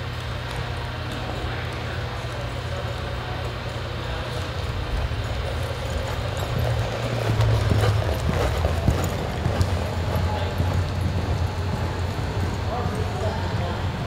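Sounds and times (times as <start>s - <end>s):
steady low hum: 0.0s - 14.0s
horse hoofbeats on soft dirt: 0.1s - 14.0s.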